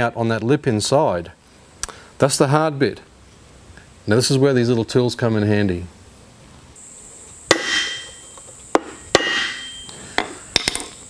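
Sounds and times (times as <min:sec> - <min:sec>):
hammer striking metal: 0:07.5 - 0:10.9
metallic ring: 0:07.5 - 0:11.0.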